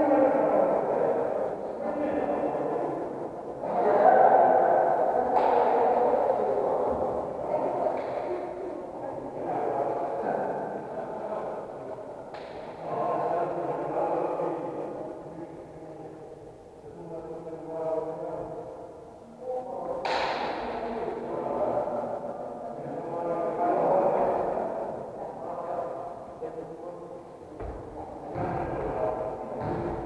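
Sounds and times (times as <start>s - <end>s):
people talking in echoing hall: 0.0s - 30.0s.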